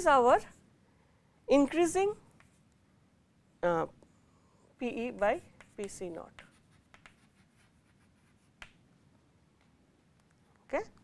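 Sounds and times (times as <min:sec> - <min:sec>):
chalk tap on blackboard: 0:05.5 - 0:08.8
chalk click: 0:05.6 - 0:07.4.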